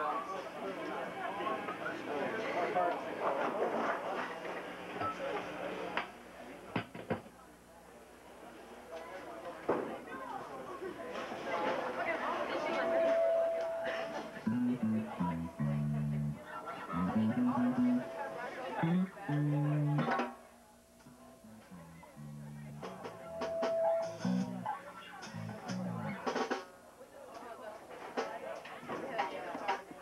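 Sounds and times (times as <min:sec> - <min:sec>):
steady higher tone: 0:13.0 - 0:20.3, 0:21.1 - 0:26.2
electric bass guitar notes: 0:14.4 - 0:18.1, 0:18.8 - 0:20.3, 0:21.0 - 0:26.2.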